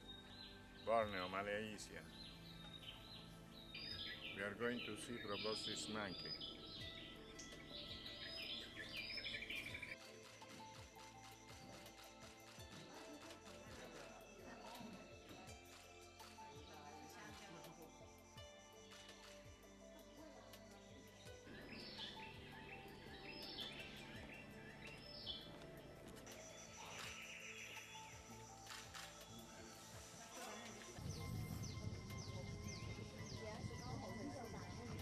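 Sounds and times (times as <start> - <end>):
forest birds chirping and trilling: 0.0 - 35.0.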